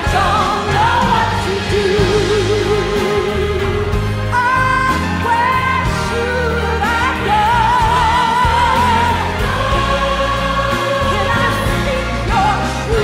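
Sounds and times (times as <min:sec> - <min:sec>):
live band with drums and keyboard: 0:00.0 - 0:13.0
woman singing with vibrato: 0:00.0 - 0:13.0.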